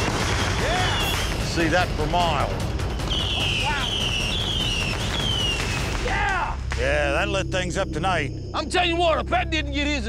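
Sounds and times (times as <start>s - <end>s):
fireworks whistling: 0.0s - 6.2s
fireworks crackling pops: 0.0s - 7.0s.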